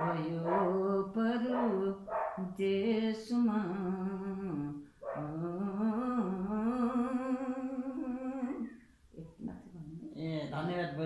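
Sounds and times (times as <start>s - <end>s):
elderly woman singing a long note: 0.0s - 8.7s.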